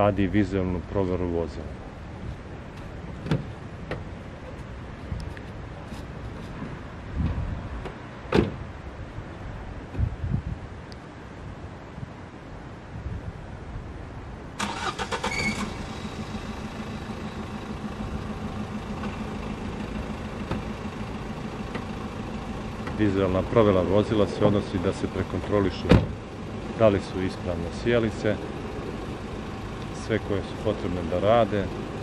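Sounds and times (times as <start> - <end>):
car door shutting: 3.2 - 4.1, 7.2 - 8.6, 14.6 - 16.3, 20.2 - 22.0, 22.8 - 23.1, 25.6 - 26.4
car engine starting and idling: 14.6 - 32.0.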